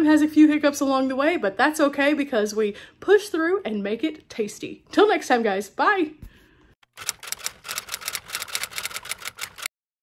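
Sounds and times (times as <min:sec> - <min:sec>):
sharp mechanical clicks: 0:06.9 - 0:09.7.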